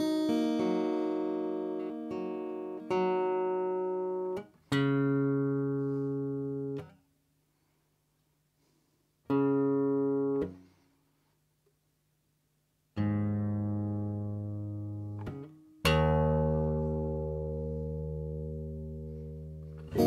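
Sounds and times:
acoustic guitar strings plucked: 13.0s - 20.0s.

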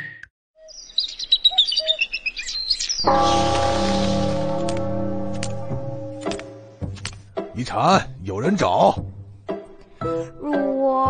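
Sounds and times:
small birds chirping: 0.6s - 3.7s
music with held chord: 3.1s - 6.8s.

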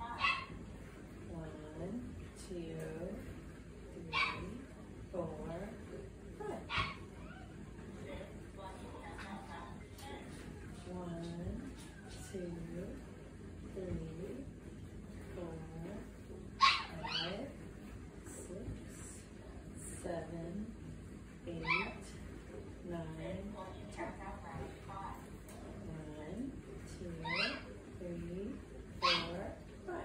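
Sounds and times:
dog yipping: 0.2s - 0.6s, 4.1s - 4.4s, 6.7s - 7.6s, 16.6s - 17.3s, 27.2s - 27.7s, 29.0s - 29.4s.

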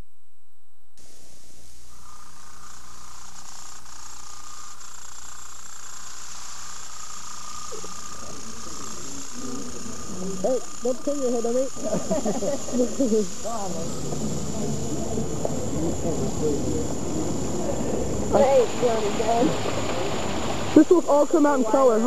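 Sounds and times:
background hiss: 1.0s - 22.0s.

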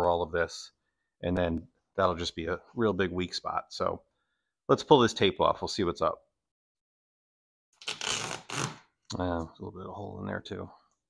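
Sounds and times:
tape peeling off cushion: 7.8s - 8.9s.

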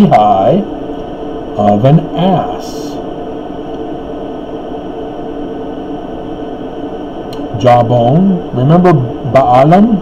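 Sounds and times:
background hum and hiss: 0.0s - 10.0s
faint constant tones: 0.0s - 10.0s.

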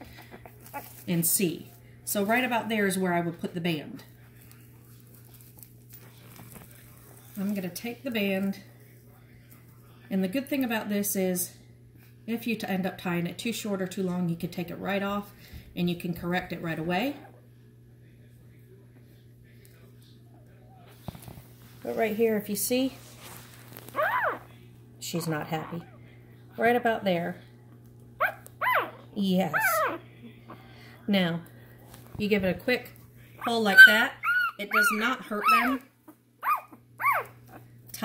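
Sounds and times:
steady low hum: 0.0s - 38.0s
soft taps and rustles: 20.9s - 22.1s
puppy crying: 23.9s - 24.5s, 28.2s - 30.0s, 33.4s - 35.8s, 36.4s - 37.7s.

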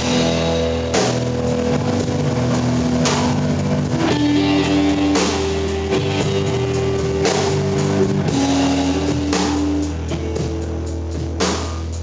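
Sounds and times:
drum and cymbal hit: 0.0s - 12.0s
rock band playing: 0.0s - 12.0s.

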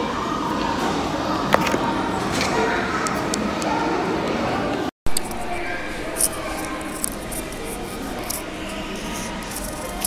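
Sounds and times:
faint music: 0.0s - 10.0s
murmur of voices: 0.0s - 10.0s
earphone cable rubbing: 5.1s - 10.0s.

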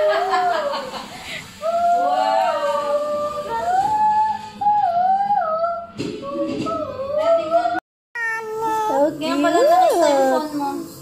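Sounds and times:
toddler whining: 8.2s - 10.4s.

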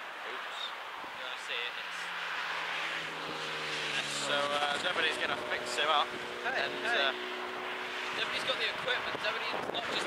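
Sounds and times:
vehicle passing on road: 0.0s - 10.0s.

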